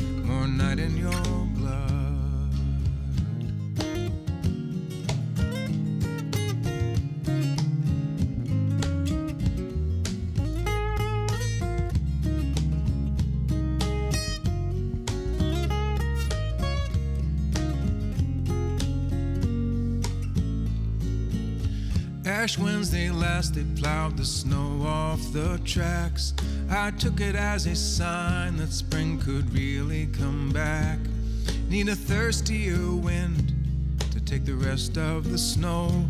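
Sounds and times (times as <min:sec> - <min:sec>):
acoustic guitar: 0:00.0 - 0:36.0
cajon drum: 0:00.0 - 0:36.0
electric bass: 0:00.0 - 0:36.0.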